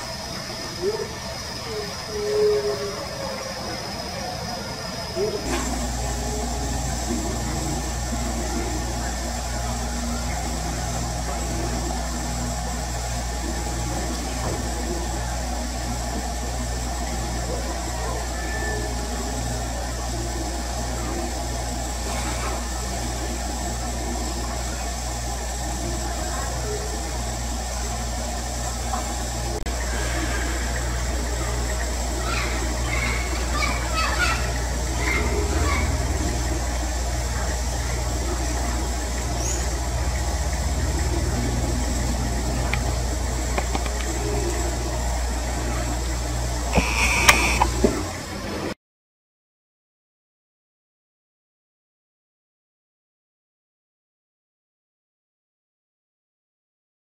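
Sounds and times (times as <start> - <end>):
pulsing machine hum: 0.0 - 48.8.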